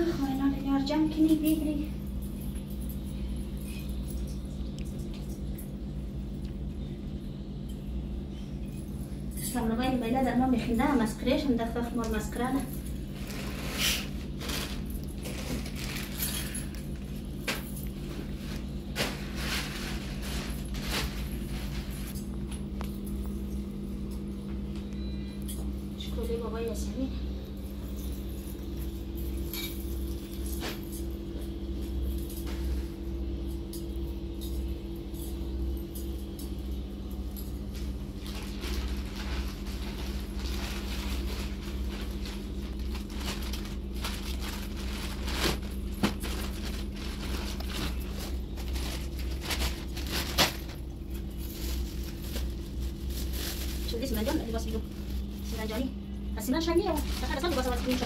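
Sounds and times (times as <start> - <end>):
steady low hum: 0.0 - 58.0
plastic bags rustling: 8.7 - 23.6, 27.9 - 58.0.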